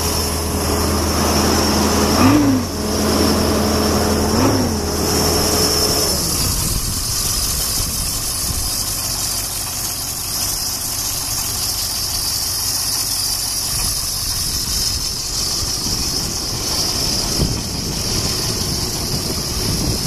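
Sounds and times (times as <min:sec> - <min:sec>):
diesel bus engine idling: 0:00.0 - 0:20.0.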